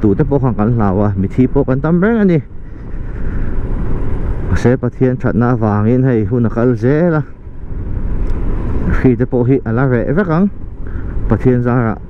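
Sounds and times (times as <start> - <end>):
wind noise: 0.0 - 12.0.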